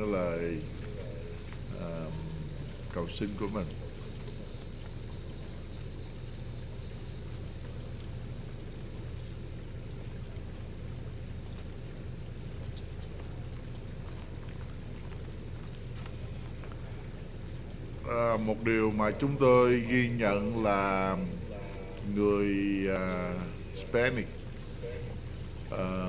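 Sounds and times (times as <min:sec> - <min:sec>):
faint high hiss: 0:00.0 - 0:26.0
faint ticks: 0:00.0 - 0:26.0.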